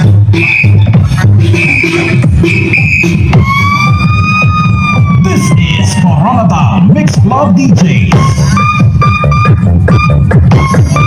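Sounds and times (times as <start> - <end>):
loud dance music with heavy bass: 0.0 - 11.0
siren-like tone: 0.3 - 6.7.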